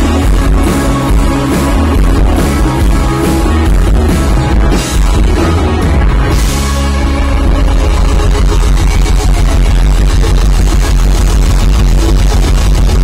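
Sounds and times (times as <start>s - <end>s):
rock band playing loudly: 0.0s - 13.0s.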